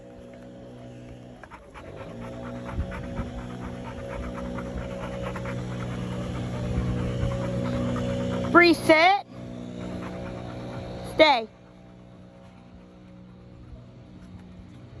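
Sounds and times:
puppy panting: 0:01.1 - 0:14.7.

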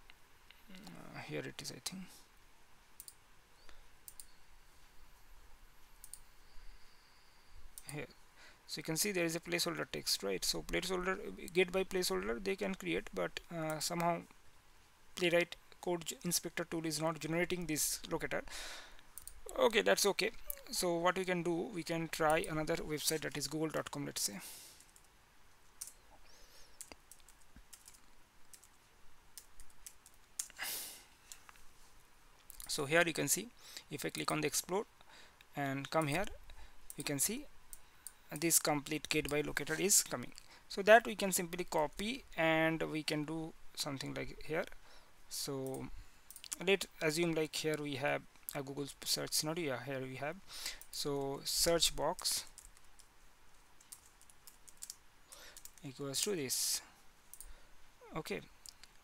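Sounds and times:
computer keys typing: 0:03.0 - 0:03.2, 0:04.0 - 0:04.4, 0:06.0 - 0:06.3, 0:19.2 - 0:20.8, 0:21.9 - 0:25.1, 0:25.8 - 0:28.8, 0:29.4 - 0:30.6, 0:52.2 - 0:53.1, 0:53.7 - 0:55.9
computer mouse clicks: 0:03.0 - 0:04.4, 0:06.0 - 0:06.3, 0:26.7 - 0:28.8, 0:53.8 - 0:55.8.

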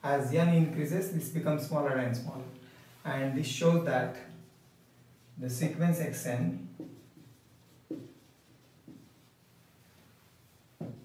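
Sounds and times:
marker writing on whiteboard: 0:04.3 - 0:11.0.

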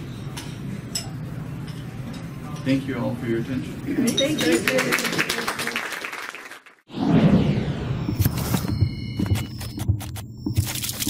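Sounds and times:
audience applause: 0:04.6 - 0:06.8
whoosh sound effect: 0:06.9 - 0:08.8.

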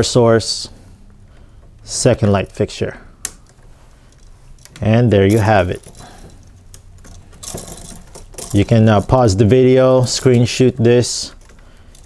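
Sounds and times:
wires rustling in junction box: 0:00.0 - 0:12.0.

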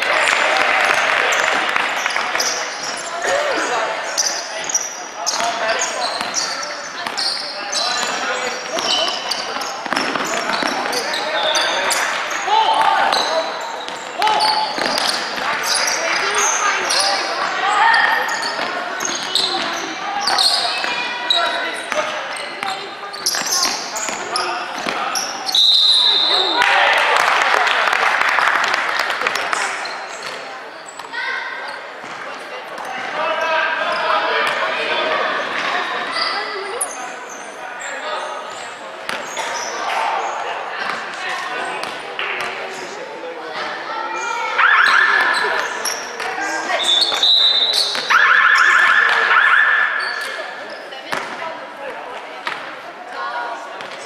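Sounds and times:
sneakers squeaking: 0:00.2 - 0:26.6, 0:28.9 - 0:51.5
people calling out: 0:02.4 - 0:04.8
referee's whistle blast: 0:25.5 - 0:26.6, 0:46.8 - 0:50.3.

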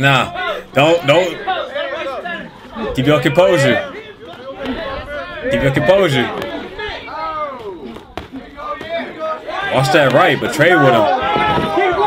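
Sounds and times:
men shouting: 0:00.0 - 0:12.0.

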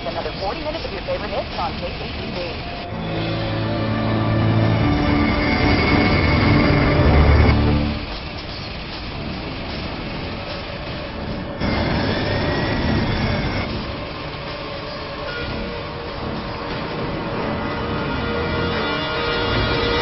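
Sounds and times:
jet airliner engine roar: 0:00.0 - 0:20.0
tense film music: 0:00.0 - 0:20.0
rising and falling whistle: 0:03.7 - 0:08.0.

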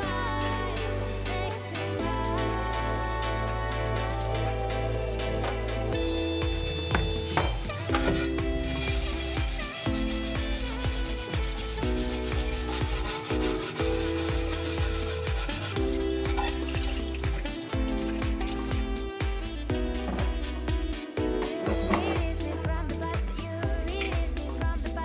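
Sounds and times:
music with steady beat: 0:00.0 - 0:25.0
brush scrubbing metal: 0:08.0 - 0:18.8.

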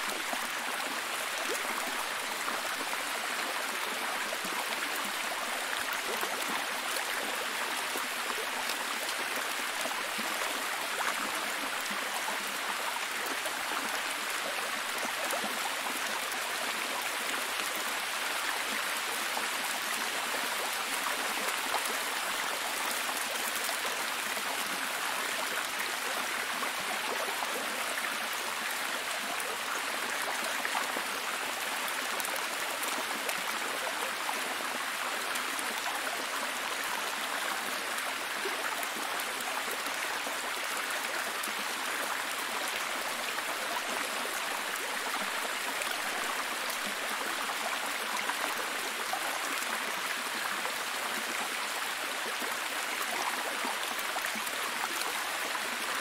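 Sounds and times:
waterfall over rocks: 0:00.0 - 0:56.0.

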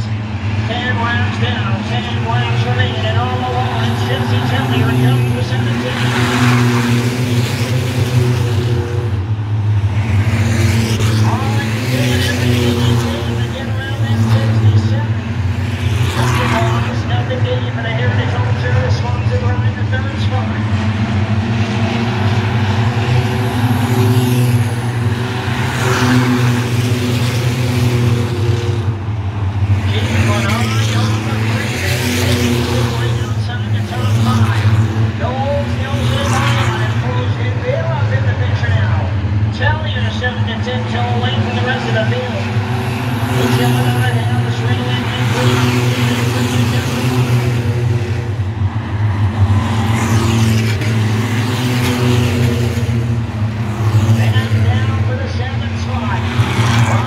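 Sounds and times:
stock car engines droning: 0:00.0 - 0:57.0.

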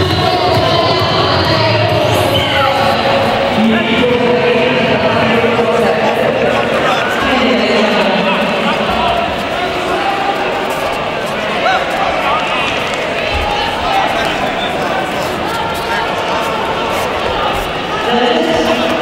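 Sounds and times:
crowd voices echoing hubbub: 0:00.0 - 0:19.0.

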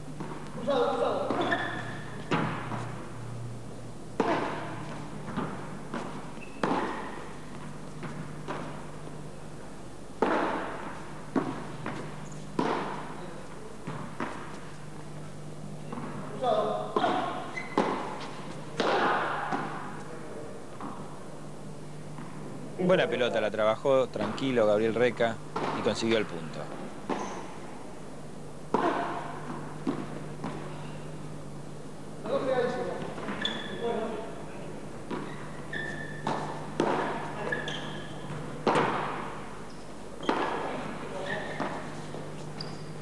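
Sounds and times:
padel ball struck by paddles: 0:04.2 - 0:07.2, 0:10.2 - 0:13.1, 0:17.0 - 0:18.2, 0:18.8 - 0:19.9, 0:36.2 - 0:37.4, 0:38.2 - 0:39.4.

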